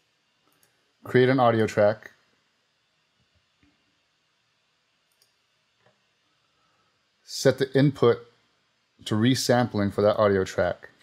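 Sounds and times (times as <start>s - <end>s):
faint computer mouse clicks: 5.1s - 6.0s.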